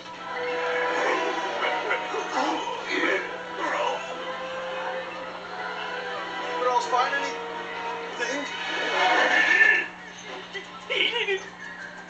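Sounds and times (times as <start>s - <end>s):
film music from television: 0.0s - 12.0s
voices from television: 0.0s - 12.0s.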